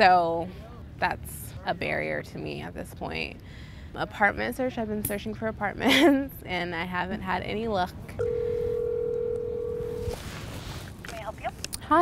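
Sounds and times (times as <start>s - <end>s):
telephone ringback tone: 8.2s - 10.2s.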